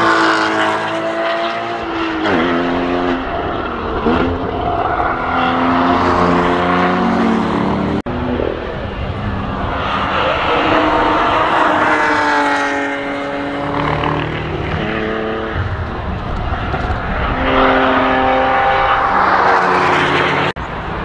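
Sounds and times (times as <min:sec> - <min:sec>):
race car engines: 0:00.0 - 0:21.0.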